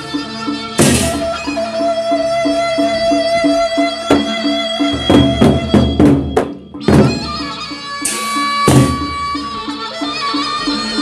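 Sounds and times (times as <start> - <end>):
barrel drums and percussion: 0.0 - 11.0
held melody line: 0.0 - 11.0
loud accented drum strokes: 0.8 - 1.6, 3.8 - 9.6
bright cymbal crashes: 8.0 - 9.2.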